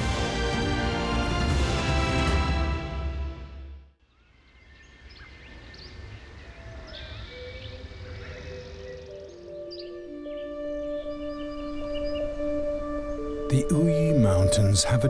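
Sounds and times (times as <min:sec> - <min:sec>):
forest ambience: 0:04.0 - 0:15.0
birds chirping and whistling: 0:04.5 - 0:14.5
soft background music: 0:08.5 - 0:15.0.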